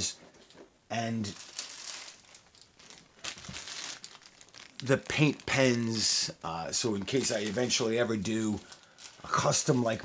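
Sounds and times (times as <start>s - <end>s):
plastic bag crinkling: 1.2s - 10.0s.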